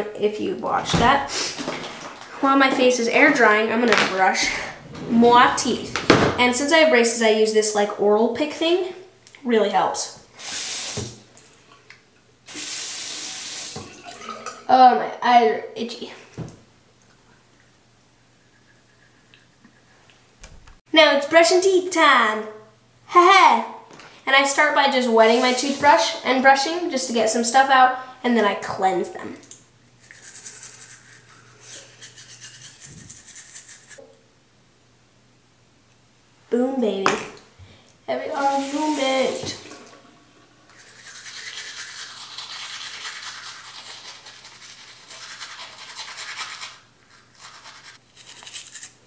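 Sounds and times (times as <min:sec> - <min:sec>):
water running into sink: 0:12.5 - 0:14.7, 0:38.2 - 0:43.3
toothbrush scrubbing teeth: 0:30.0 - 0:34.0, 0:40.6 - 0:49.0.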